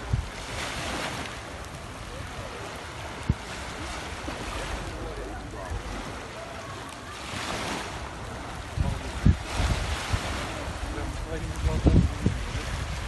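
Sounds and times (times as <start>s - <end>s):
small waves washing on shore: 0.0s - 13.0s
wind buffeting microphone: 0.0s - 13.0s.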